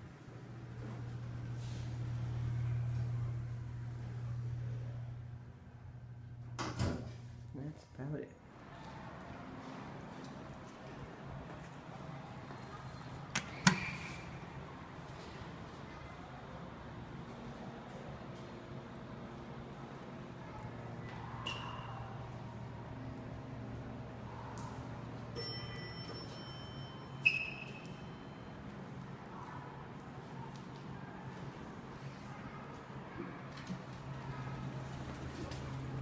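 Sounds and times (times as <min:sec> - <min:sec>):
elevator chime ringing: 0:25.3 - 0:28.5.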